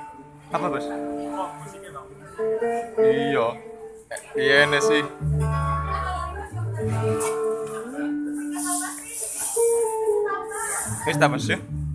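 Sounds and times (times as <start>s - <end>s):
guitar: 0.0s - 11.9s
live band playing: 0.0s - 11.9s
people talking: 3.0s - 11.7s
percussion: 5.2s - 11.9s.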